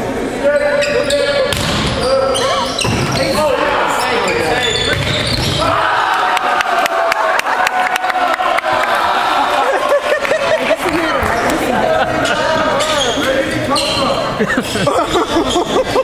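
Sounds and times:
volleyball being hit: 1.5 - 2.0
players shouting: 1.9 - 14.4.

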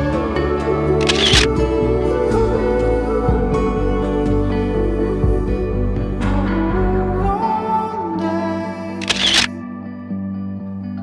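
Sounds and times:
soft background music: 0.0 - 11.0
camera shutter click: 1.0 - 1.5, 9.0 - 9.5.

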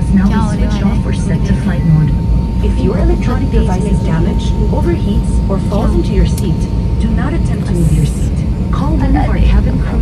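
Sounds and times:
person speaking: 0.0 - 9.5
airliner cabin engine rumble: 0.0 - 10.0.

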